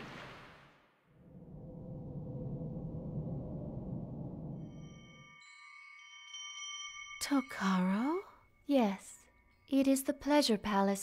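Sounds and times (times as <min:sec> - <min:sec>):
soft chimes ringing: 0:04.6 - 0:11.0.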